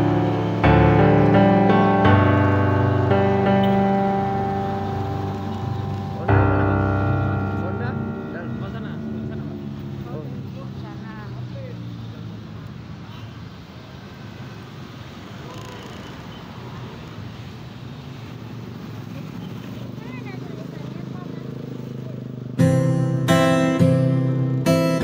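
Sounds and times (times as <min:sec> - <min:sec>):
background music: 0:00.0 - 0:11.0, 0:22.6 - 0:25.0
passing traffic and motorbikes: 0:00.0 - 0:25.0
people's voices: 0:03.1 - 0:12.4.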